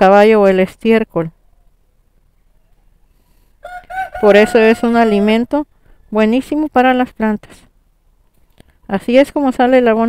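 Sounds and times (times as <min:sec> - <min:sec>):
rooster crowing: 0:03.6 - 0:05.5.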